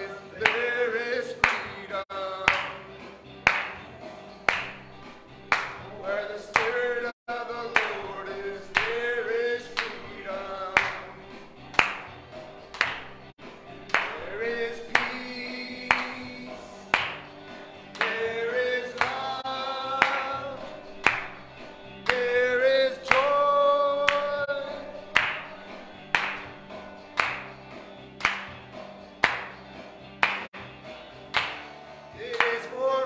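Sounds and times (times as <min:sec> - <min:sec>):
group singing along: 0:00.0 - 0:02.8, 0:05.9 - 0:11.4, 0:13.9 - 0:16.9, 0:17.8 - 0:21.0
clap-like beat: 0:00.4 - 0:33.0
person singing melody: 0:22.0 - 0:25.8.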